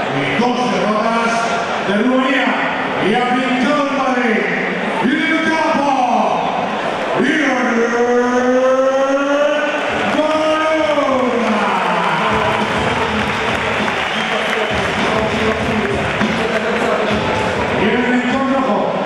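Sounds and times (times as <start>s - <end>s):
crowd cheering and applauding: 9.3s - 18.6s.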